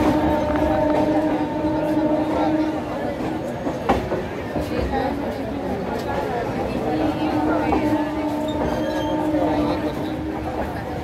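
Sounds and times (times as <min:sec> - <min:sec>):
train running gear rumble: 0:00.0 - 0:11.0.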